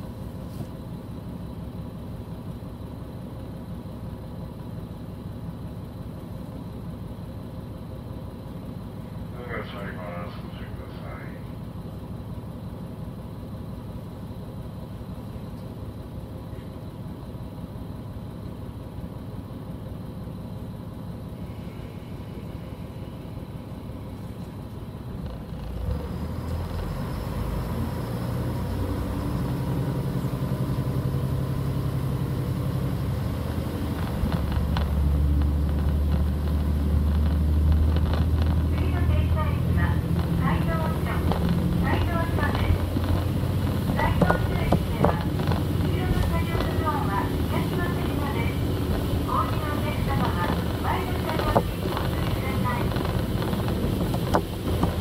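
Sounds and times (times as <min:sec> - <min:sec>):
diesel railcar engine: 0:00.0 - 0:55.0.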